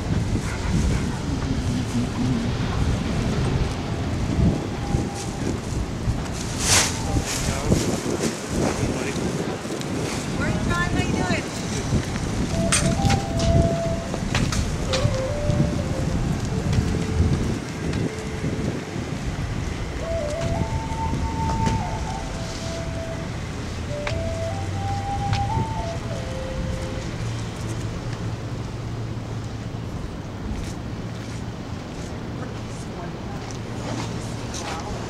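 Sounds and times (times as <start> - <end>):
wind buffeting microphone: 0.0 - 35.0
faint tune of held notes: 12.5 - 18.6, 19.9 - 27.3.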